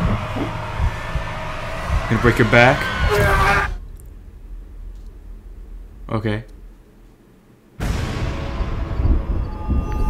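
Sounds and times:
steady droning hum: 0:00.0 - 0:09.3
low dull thuds: 0:00.0 - 0:09.8.

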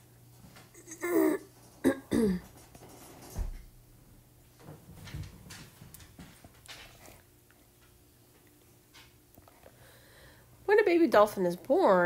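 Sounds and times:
woman coughing: 0:01.0 - 0:02.5.

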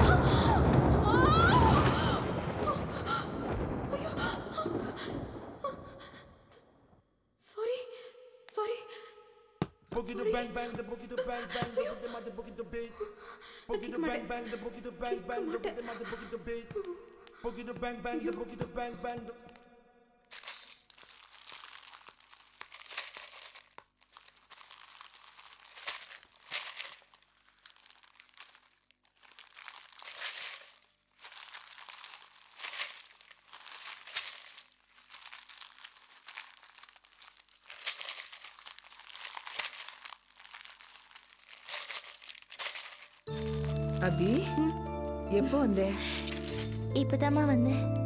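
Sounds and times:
dried spices rustling and crackling: 0:20.3 - 0:44.7, 0:45.4 - 0:46.9.

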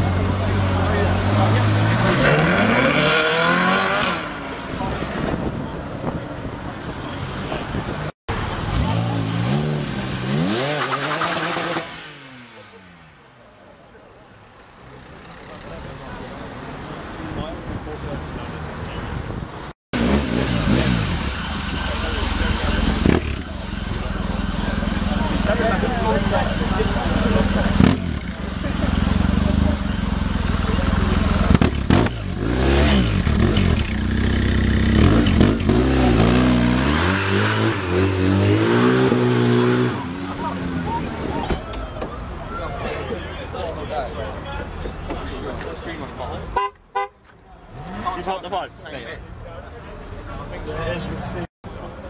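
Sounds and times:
quad bike engine revving: 0:00.0 - 0:04.4, 0:08.5 - 0:12.7, 0:20.0 - 0:41.2.

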